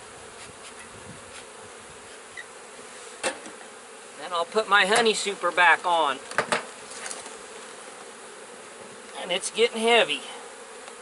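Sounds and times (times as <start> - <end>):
bees buzzing: 0.0 - 11.0.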